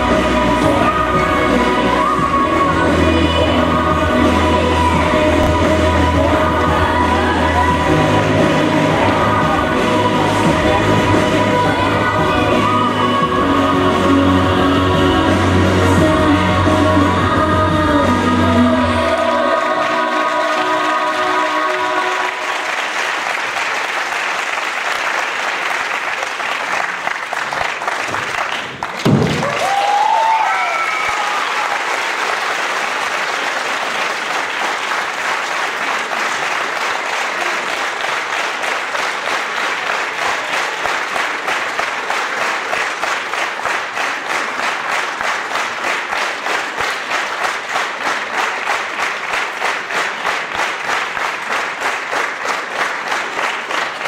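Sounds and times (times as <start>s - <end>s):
music: 0.0s - 22.8s
rhythmic clapping in unison: 0.0s - 54.0s
audience applauding: 19.3s - 54.0s
thump: 29.0s - 29.4s.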